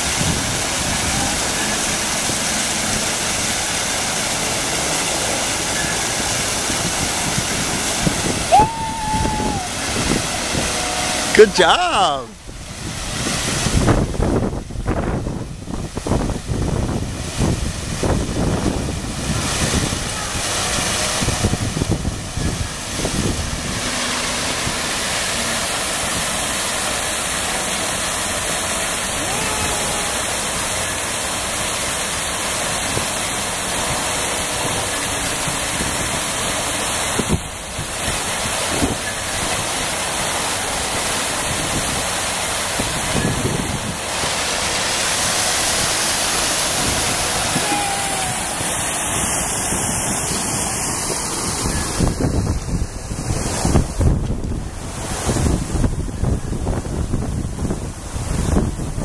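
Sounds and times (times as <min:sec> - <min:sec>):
waterfall rushing over rocks: 0:00.0 - 0:56.8
wind buffeting microphone: 0:06.3 - 0:11.3, 0:12.4 - 0:24.9, 0:41.4 - 0:44.2, 0:45.6 - 0:59.0.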